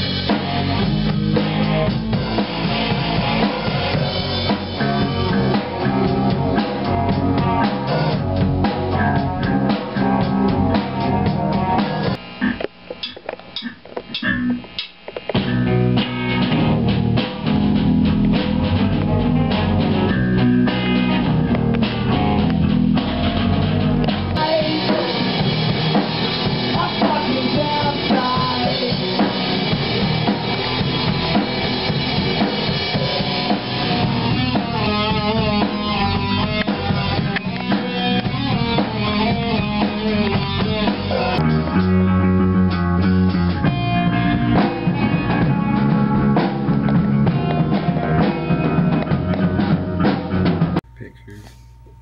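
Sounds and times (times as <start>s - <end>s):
live rock band playing: 0.0s - 50.8s
electric guitar: 0.0s - 50.9s
drum kit beat: 0.0s - 52.0s.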